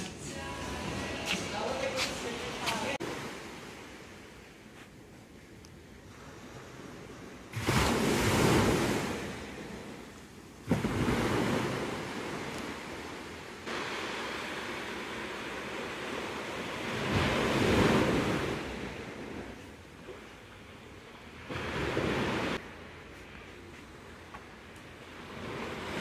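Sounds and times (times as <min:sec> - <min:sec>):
ocean surf breaking: 0:00.0 - 0:04.5, 0:06.1 - 0:23.0, 0:24.9 - 0:26.0.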